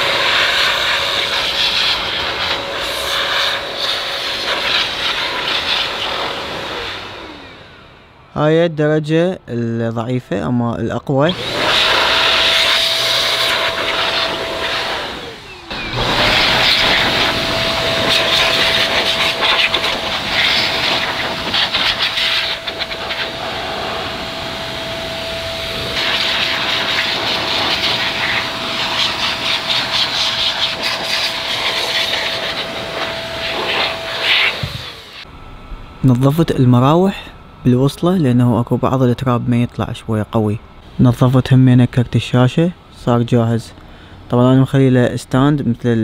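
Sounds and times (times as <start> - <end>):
electric air duster blowing: 0.0 - 8.2, 11.3 - 36.2.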